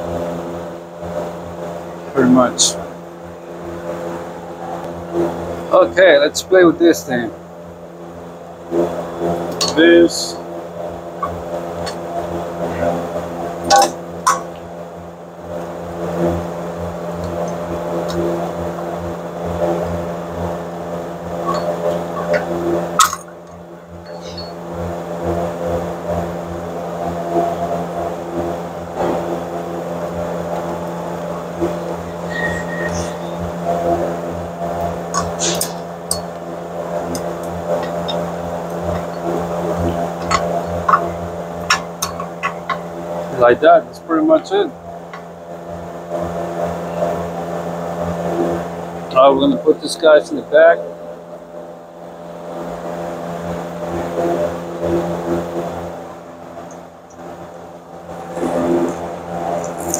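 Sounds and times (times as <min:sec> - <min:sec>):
low machine hum: 0:00.0 - 0:59.9.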